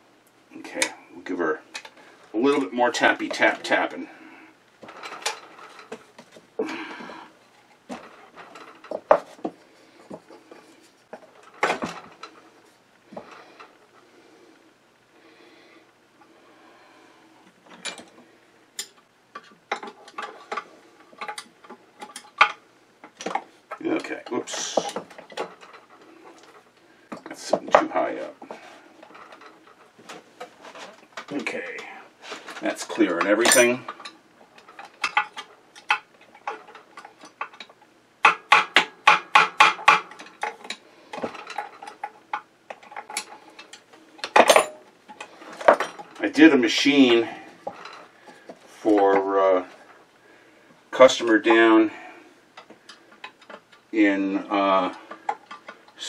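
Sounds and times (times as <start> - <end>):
tools clinking on bench: 44.2 - 44.8.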